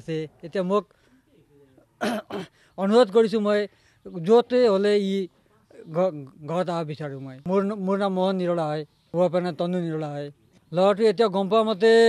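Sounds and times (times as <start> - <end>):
person coughing: 2.0 - 2.6.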